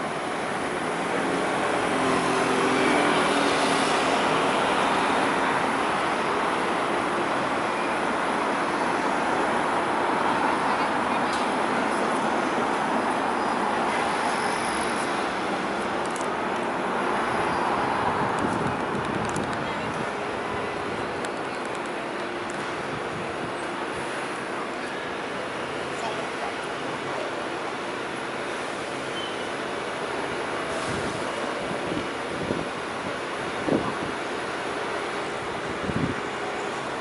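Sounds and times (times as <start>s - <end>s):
road traffic noise: 0.0s - 37.0s.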